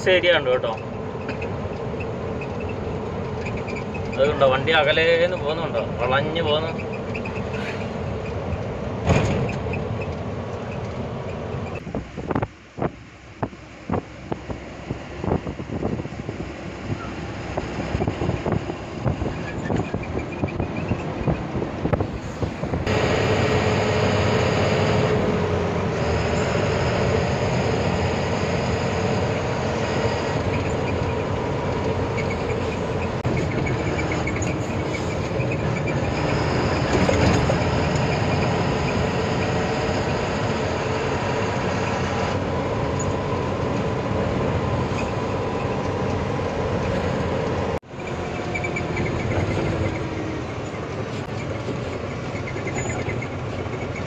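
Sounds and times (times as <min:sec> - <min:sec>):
road noise: 0:00.0 - 0:54.0
truck engine: 0:00.0 - 0:54.0.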